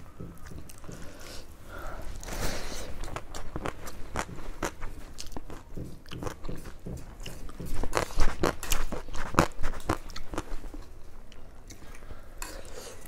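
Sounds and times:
crunchy chewing: 2.2 - 13.0.

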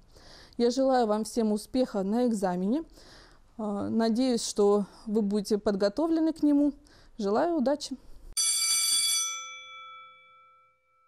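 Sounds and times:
bright bell-like chime: 8.4 - 11.0.

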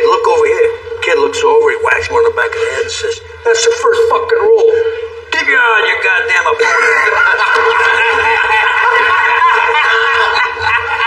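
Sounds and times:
group of men laughing: 6.6 - 11.0.

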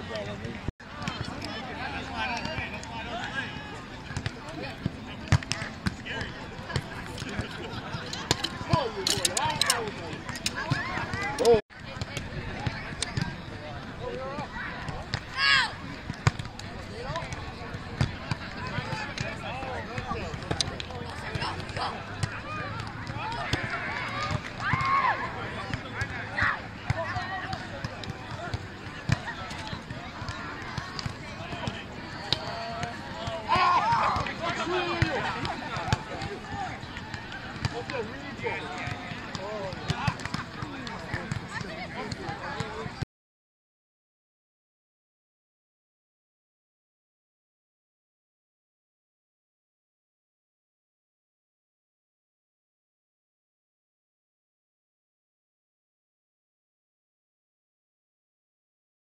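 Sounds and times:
outdoor background noise: 0.0 - 43.0.

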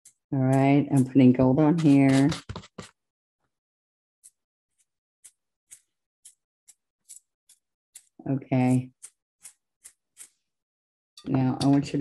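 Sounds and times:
toothbrush bristles flicking: 4.2 - 10.4.

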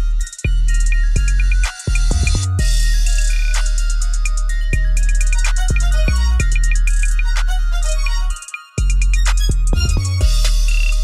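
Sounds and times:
trap hip-hop beat: 0.0 - 11.0.

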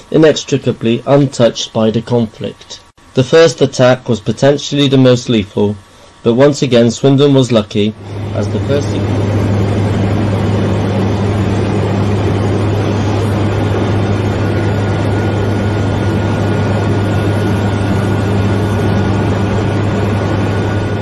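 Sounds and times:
propeller aircraft engine drone: 8.0 - 21.0.

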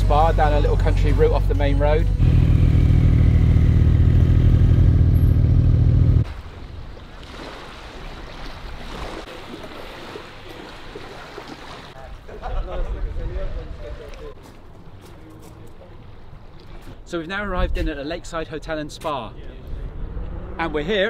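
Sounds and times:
car engine running at low revs: 2.1 - 6.2.

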